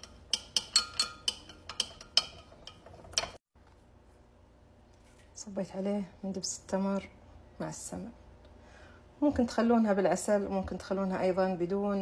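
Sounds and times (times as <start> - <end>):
spoon clinking against glass jug: 0.0 - 3.4.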